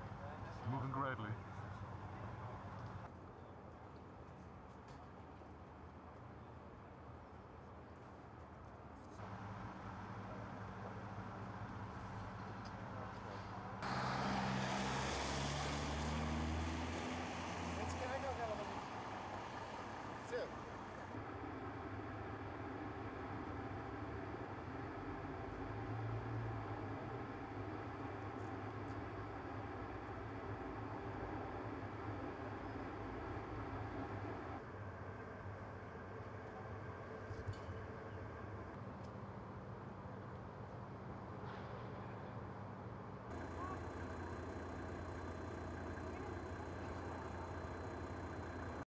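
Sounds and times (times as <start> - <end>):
traffic hum: 0.0 - 48.9
vehicle engine running: 43.3 - 48.9.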